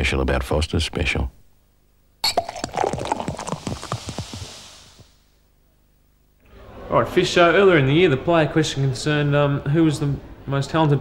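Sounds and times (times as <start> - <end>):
beer glugging from bottle: 2.2 - 4.6
fizzing foam hiss: 2.6 - 5.3.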